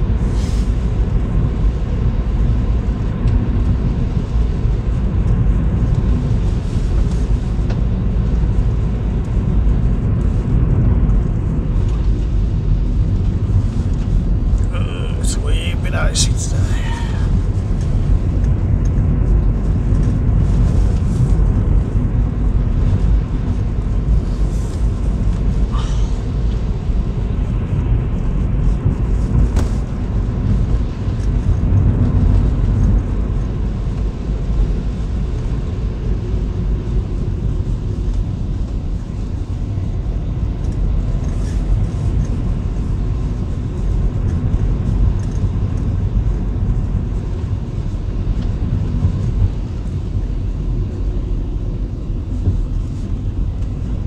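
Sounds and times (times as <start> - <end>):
car engine and tyres rumbling: 0.0 - 54.0.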